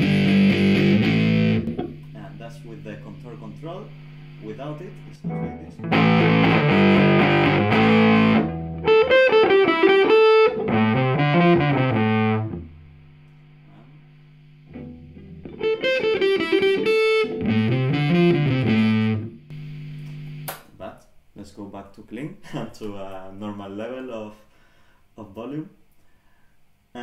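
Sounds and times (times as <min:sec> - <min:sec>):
overdriven electric guitar melody: 0:00.0 - 0:02.2, 0:04.2 - 0:13.6, 0:14.4 - 0:20.5
sharp click: 0:20.0 - 0:20.7.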